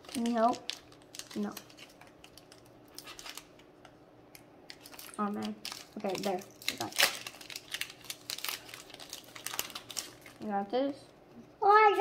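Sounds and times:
foil wrapper crinkling: 0:00.0 - 0:03.9, 0:04.7 - 0:10.6
sharp crackles of foil: 0:00.0 - 0:03.9, 0:04.7 - 0:10.7.

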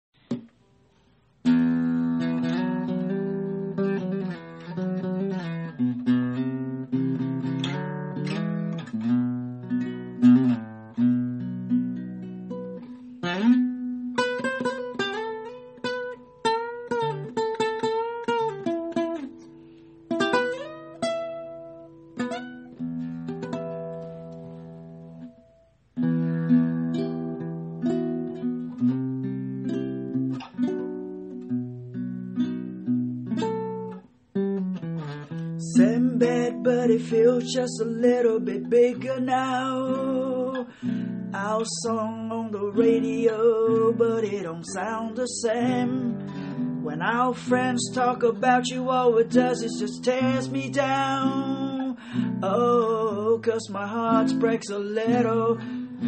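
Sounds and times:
acoustic guitar chords ringing: 0:00.3 - 0:56.0.

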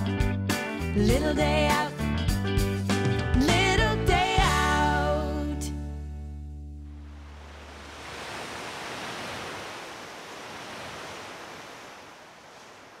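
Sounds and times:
sea waves washing onto beach: 0:07.0 - 0:13.0.

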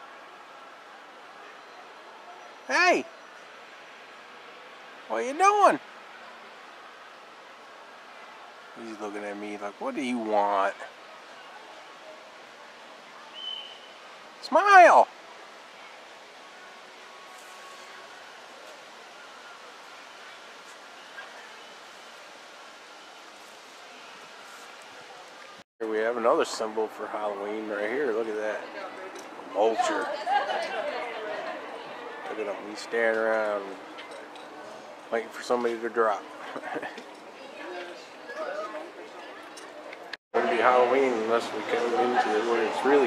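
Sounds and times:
faint steady hiss: 0:00.0 - 0:43.0
indistinct chatter of voices: 0:00.0 - 0:43.0
high whistle-like tone: 0:13.4 - 0:14.0.

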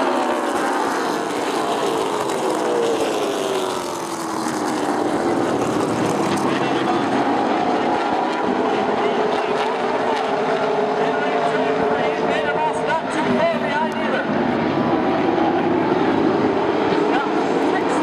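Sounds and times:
race car engines at speed: 0:00.0 - 0:18.0.

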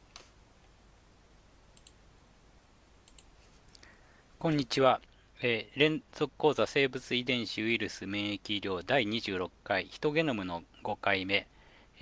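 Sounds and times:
faint quick clicks: 0:01.8 - 0:02.0, 0:03.0 - 0:04.0.

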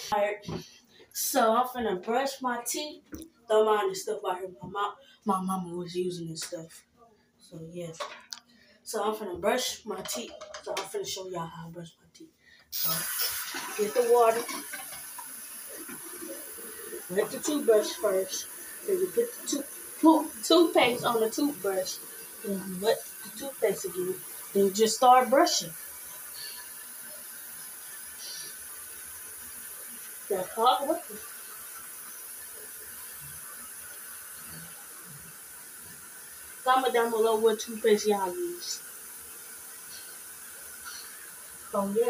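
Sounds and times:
low room hiss: 0:00.0 - 0:42.0.

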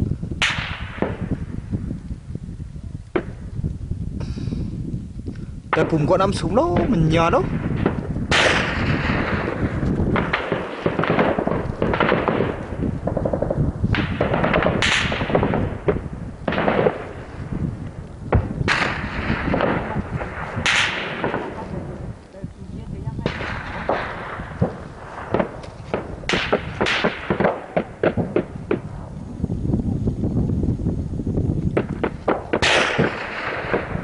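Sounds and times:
shell explosions: 0:00.3 - 0:01.9, 0:03.0 - 0:03.6, 0:05.7 - 0:34.0
sharp gunshot cracks: 0:00.4 - 0:01.4, 0:03.1 - 0:03.4, 0:06.7 - 0:17.2, 0:18.3 - 0:21.7, 0:23.2 - 0:28.9, 0:31.8 - 0:34.0
heavy gunfire reports echoing: 0:05.7 - 0:17.6, 0:18.3 - 0:22.2, 0:23.2 - 0:29.0, 0:31.8 - 0:34.0.

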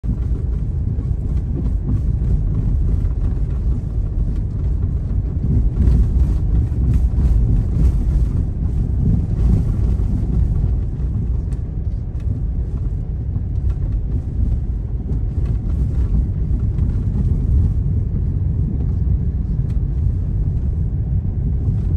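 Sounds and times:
car driving on snowy road: 0:00.0 - 0:21.9.

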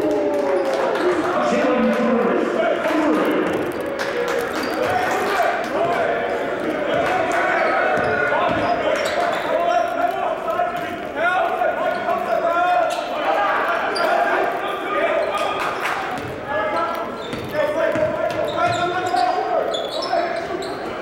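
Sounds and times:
people shouting in a hall: 0:00.0 - 0:17.1
basketball bouncing on hardwood floor: 0:08.0 - 0:08.7, 0:17.3 - 0:18.8.

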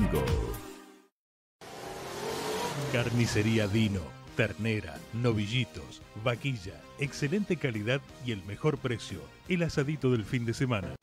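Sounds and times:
car accelerating sound effect: 0:01.6 - 0:04.2.

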